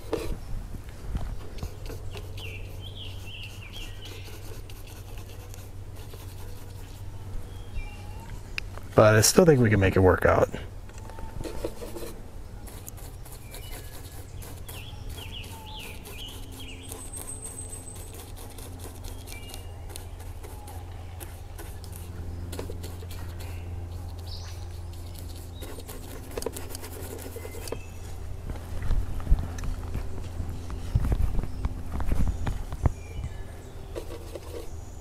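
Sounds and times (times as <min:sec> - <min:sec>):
steady low hum: 0:00.0 - 0:35.0
birds chirping and whistling: 0:01.4 - 0:04.6, 0:06.7 - 0:08.8, 0:13.0 - 0:26.2, 0:27.1 - 0:28.2, 0:30.0 - 0:35.0.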